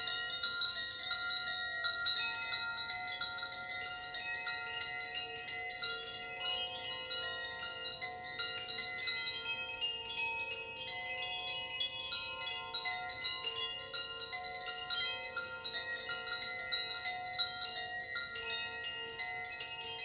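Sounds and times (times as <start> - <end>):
wind chimes ringing: 0.0 - 20.0.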